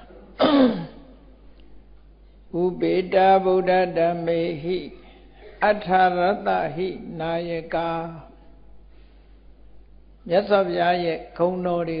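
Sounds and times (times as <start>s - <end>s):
man clearing his throat: 0.0s - 1.2s.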